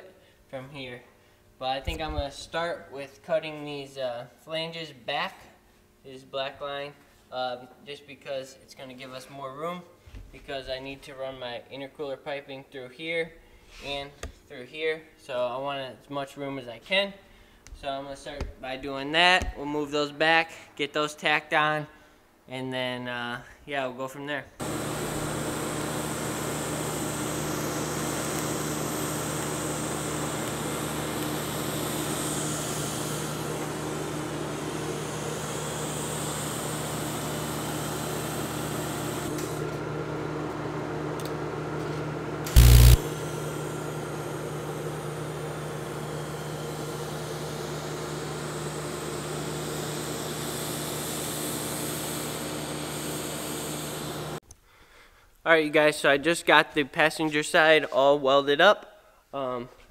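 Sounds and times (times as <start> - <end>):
welding buzz and hiss: 24.6 - 39.8, 41.2 - 54.4.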